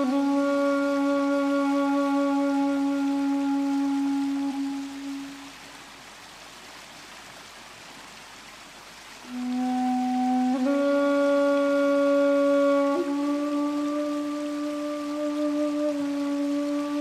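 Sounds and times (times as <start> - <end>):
bamboo flute long low note: 0.0 - 5.8, 9.2 - 17.0
soft steady hiss: 0.0 - 17.0.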